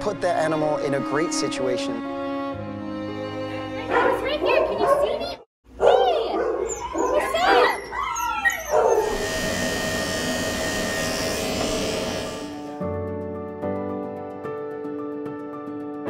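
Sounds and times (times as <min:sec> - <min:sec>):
soft music: 0:00.0 - 0:04.8
small dog whining and yelping: 0:05.8 - 0:09.1
electric clippers buzzing: 0:08.8 - 0:12.8.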